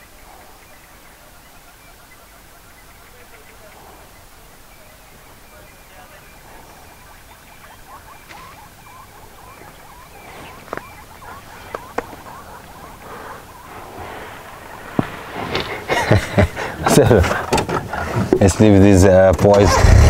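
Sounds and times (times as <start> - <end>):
faint rapid chirping: 0.0 - 17.2
people laughing: 11.2 - 14.0, 15.4 - 18.4.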